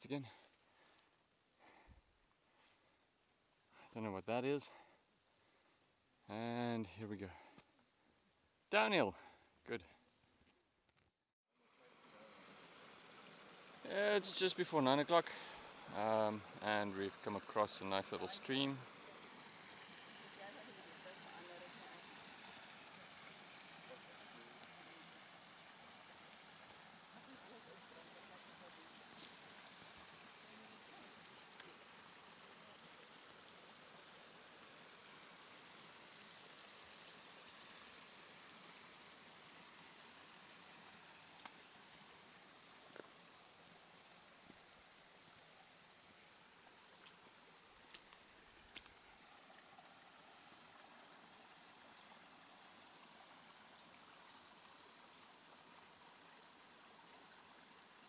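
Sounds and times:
stream trickling over stones: 11.7 - 58.0.

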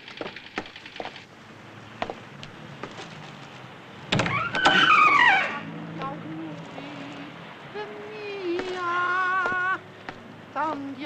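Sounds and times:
car tyres screeching: 1.0 - 11.0.

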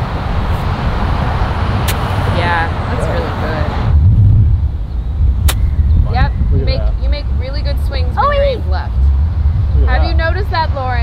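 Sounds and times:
steady low rumble: 0.0 - 11.0
golf club striking ball: 1.8 - 2.2, 5.4 - 6.0.

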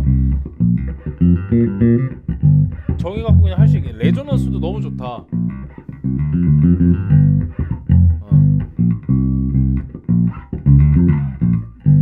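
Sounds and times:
electric bass plucked notes: 0.0 - 12.0.

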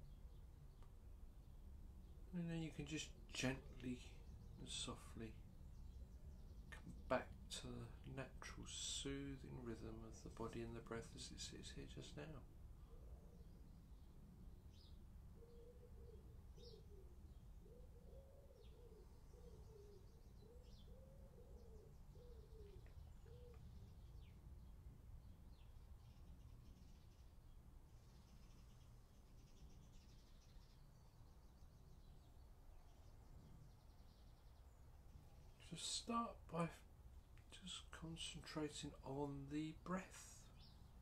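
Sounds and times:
small birds chirping faintly: 0.0 - 41.0
pigeon cooing: 15.4 - 23.7.

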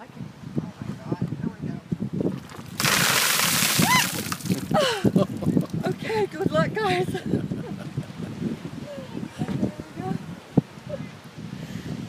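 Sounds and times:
ice water splashing: 2.4 - 5.8
person yelping: 3.8 - 5.0
person crying out: 3.8 - 5.1.

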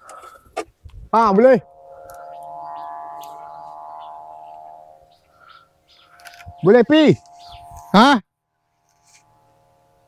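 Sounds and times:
kite hummer droning tone: 0.0 - 10.0.

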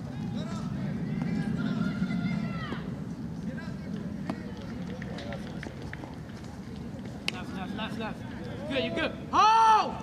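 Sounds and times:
low outdoor hum: 0.0 - 10.0.

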